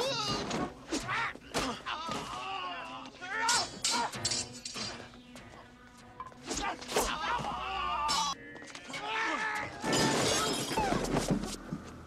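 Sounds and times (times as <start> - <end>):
glass shattering: 3.4 - 5.0, 8.1 - 11.2
glass pieces falling: 9.8 - 11.2.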